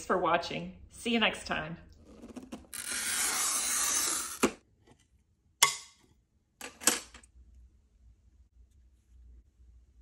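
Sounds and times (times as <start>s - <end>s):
glass cutter scratching glass: 2.7s - 4.5s.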